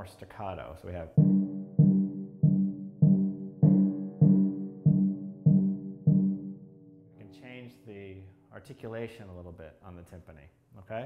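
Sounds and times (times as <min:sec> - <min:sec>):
timpani strokes: 0:01.1 - 0:07.4.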